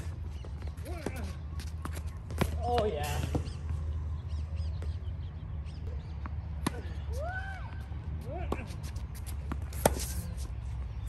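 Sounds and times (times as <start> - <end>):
tennis ball struck and bouncing: 6.1 - 7.0.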